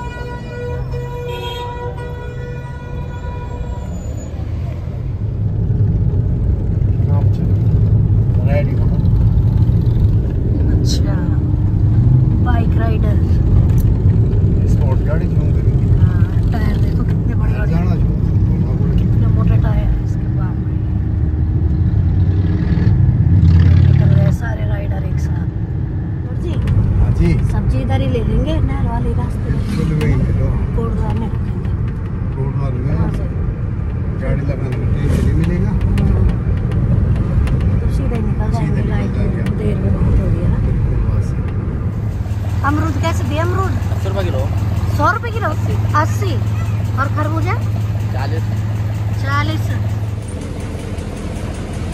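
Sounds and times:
car engine and tyre rumble: 0.0s - 51.9s
voices: 37.6s - 50.3s.

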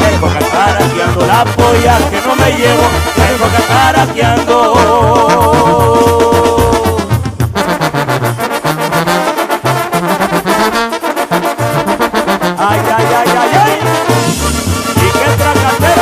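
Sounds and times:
stepping bass line: 0.0s - 8.4s, 11.6s - 16.0s
brass section playing fast notes: 0.0s - 16.0s.

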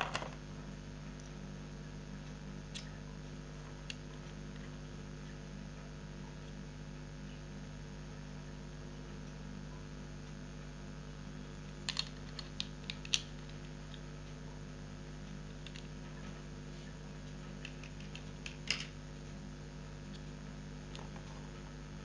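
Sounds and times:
faint electrical hum: 0.0s - 22.0s.

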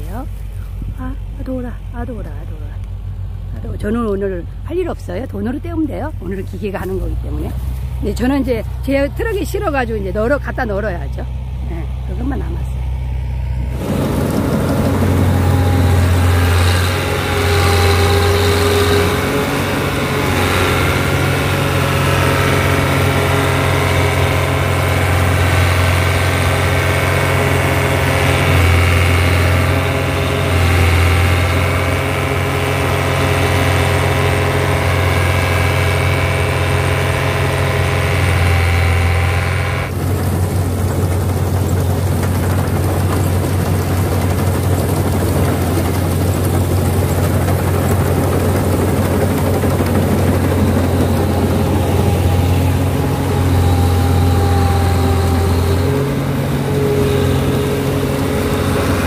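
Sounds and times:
combine harvester engine hum: 0.0s - 59.0s
machinery whining: 0.0s - 59.0s.

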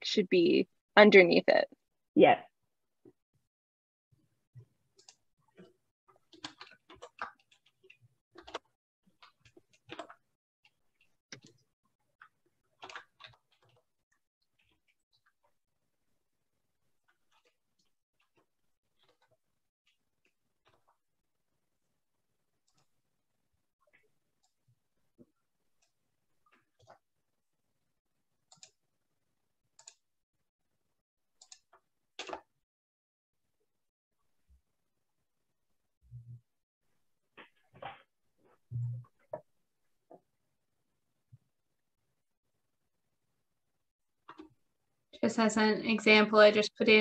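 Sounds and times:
computer keys clicking: 12.8s - 13.8s, 29.8s - 30.0s, 31.4s - 32.4s.

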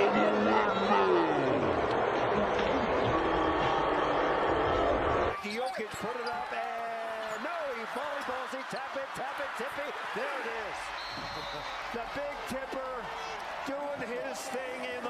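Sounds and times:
arena crowd noise: 0.0s - 15.0s
voices on court: 5.3s - 15.0s
commentator talking: 5.4s - 10.9s, 11.9s - 15.0s.

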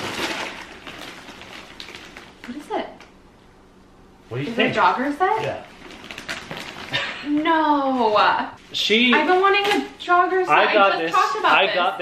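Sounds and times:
wrapping paper crinkling: 0.0s - 3.2s, 4.4s - 8.4s.

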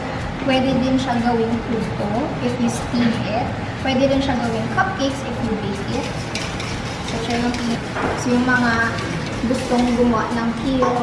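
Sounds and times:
whisk beating mixture in bowl: 4.4s - 10.7s
whisk clicking against metal bowl: 5.8s - 10.3s.

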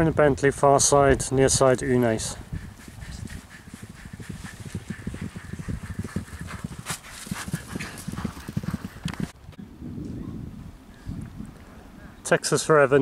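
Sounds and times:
horses galloping on turf: 1.6s - 9.4s.

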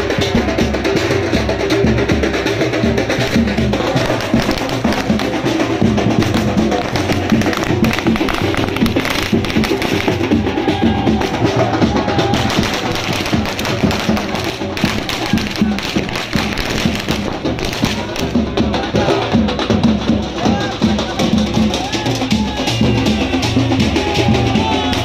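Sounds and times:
fast drum beat: 0.0s - 25.0s
sharp taps and clicks: 6.2s - 10.2s.

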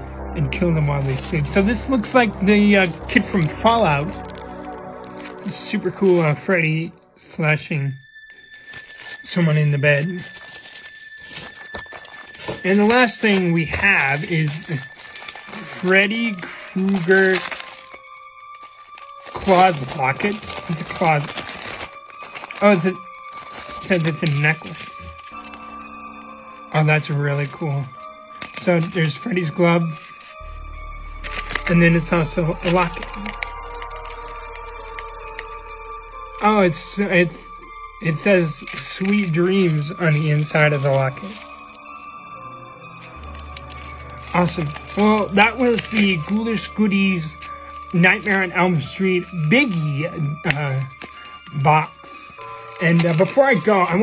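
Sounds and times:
plastic packaging crinkling: 0.8s - 54.0s.

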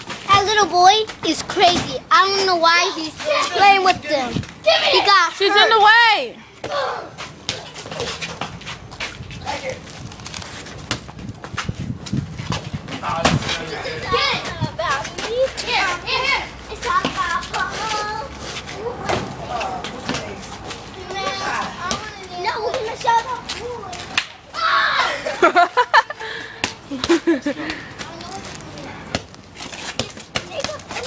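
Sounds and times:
children shouting: 4.6s - 8.0s, 22.4s - 25.4s.

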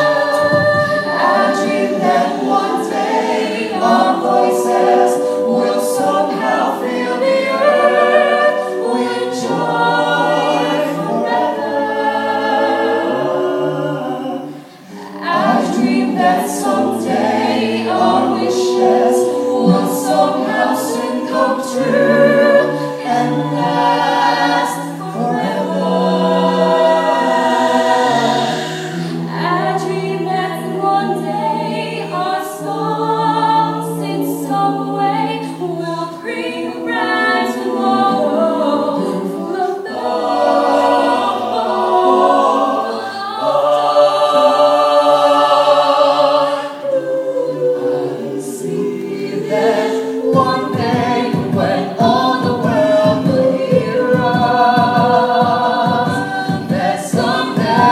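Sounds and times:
a cappella group singing in harmony: 0.0s - 57.9s.

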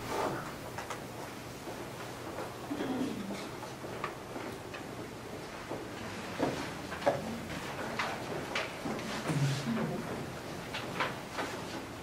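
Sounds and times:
footsteps on hard floor: 3.6s - 11.9s.

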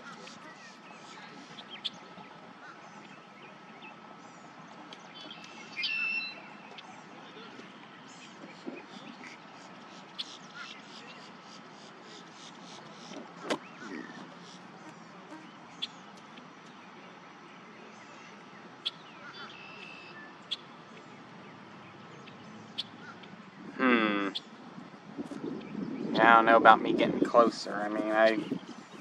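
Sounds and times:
bird chirps and calls: 5.1s - 14.7s.

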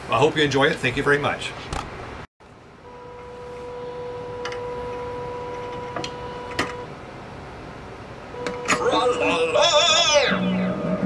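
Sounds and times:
high electrical whine: 2.8s - 7.0s, 8.3s - 11.0s.

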